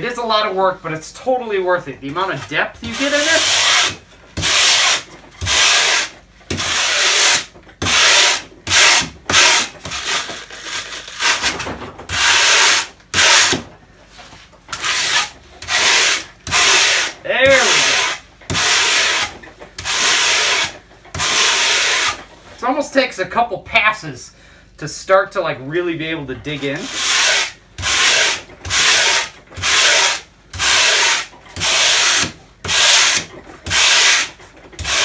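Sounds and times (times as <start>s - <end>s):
wire brush scraping foam: 2.1s - 13.6s, 14.2s - 22.7s, 26.5s - 35.0s.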